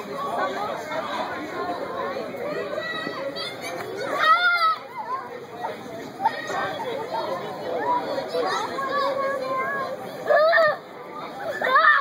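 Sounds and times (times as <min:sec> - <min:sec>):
children shouting and chattering: 0:00.0 - 0:12.0
child's high-pitched squeal: 0:09.2 - 0:10.8, 0:11.4 - 0:12.0.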